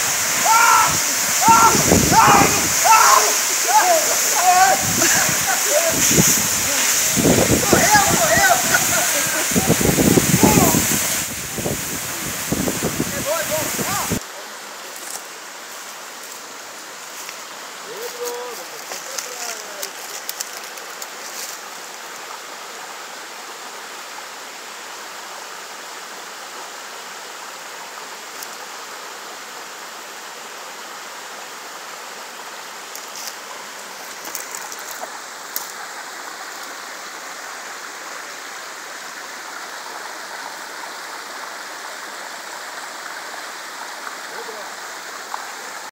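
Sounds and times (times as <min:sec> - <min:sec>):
waterfall and stream rushing: 0:00.0 - 0:45.9.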